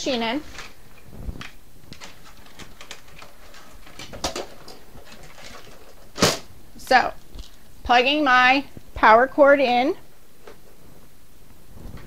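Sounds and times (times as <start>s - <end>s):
power cord rustling: 0.0s - 7.8s.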